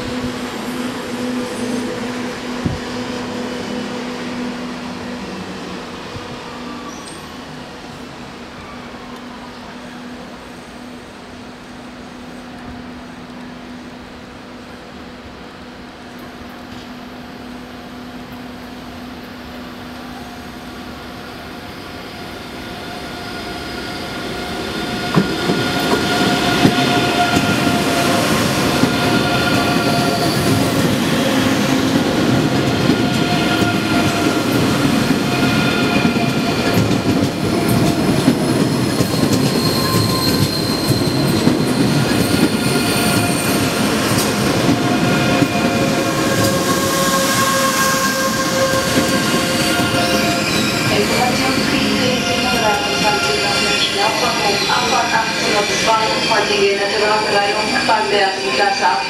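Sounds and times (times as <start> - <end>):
train rolling rush: 0.0 - 59.0.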